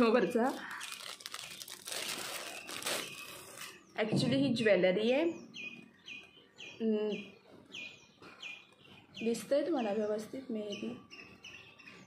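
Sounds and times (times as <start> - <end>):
plastic packaging crinkling: 0.0 - 3.8.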